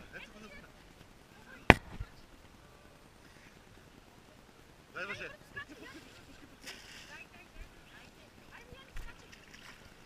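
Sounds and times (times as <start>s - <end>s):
sea water around boat: 0.0s - 10.0s.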